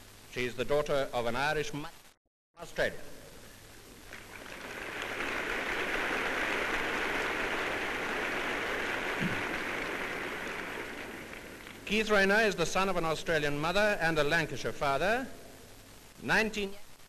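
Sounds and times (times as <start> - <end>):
audience applauding: 4.0 - 12.5.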